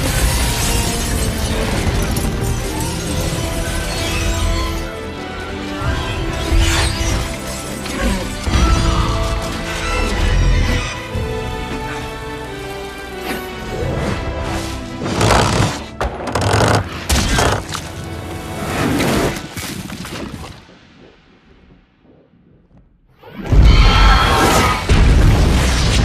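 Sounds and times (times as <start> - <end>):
dramatic film score music: 0.0 - 26.0.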